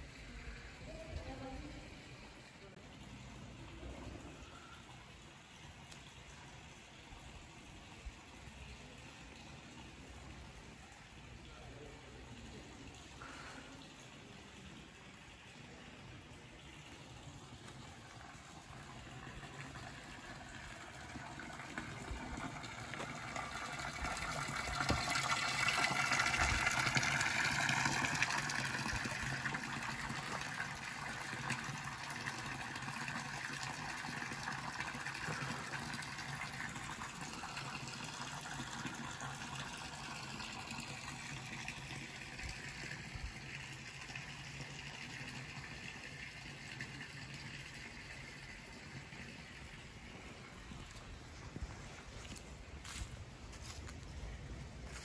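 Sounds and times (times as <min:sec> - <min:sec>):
fountain water splashing: 0:00.0 - 0:51.5.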